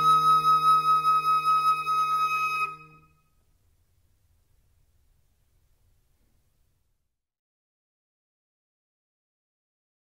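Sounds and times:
flute holding high note: 0:00.0 - 0:03.2
low sustained accompaniment tones: 0:00.0 - 0:03.2.

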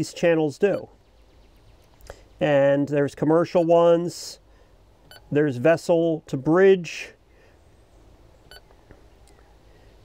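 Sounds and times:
radio key beep: 0:05.1 - 0:05.3.

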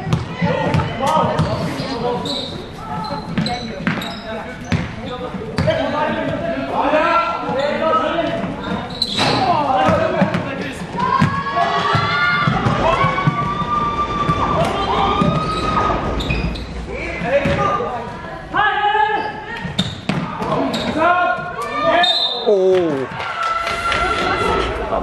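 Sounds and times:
people shouting: 0:10.9 - 0:16.2, 0:20.3 - 0:24.8
basketball bouncing on floor: 0:17.4 - 0:17.7.

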